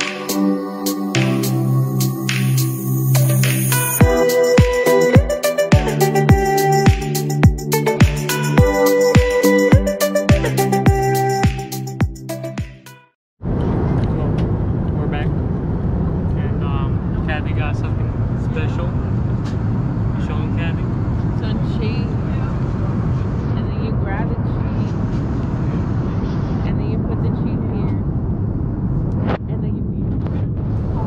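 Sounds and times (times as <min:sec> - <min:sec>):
jet cabin engine rumble: 0:13.4 - 0:31.0.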